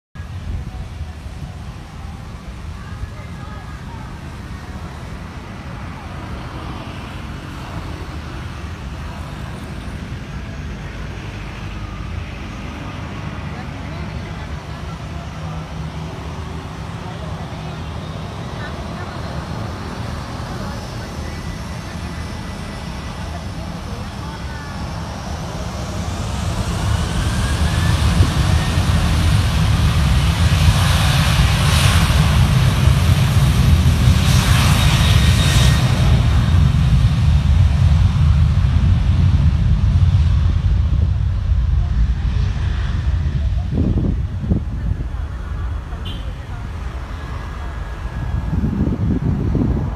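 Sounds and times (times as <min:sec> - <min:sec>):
jet engines whining: 0:00.2 - 0:49.9
low jet rumble: 0:00.2 - 0:49.9.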